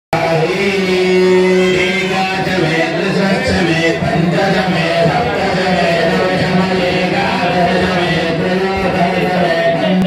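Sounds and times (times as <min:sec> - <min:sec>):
devotional chanting: 0:00.2 - 0:10.0.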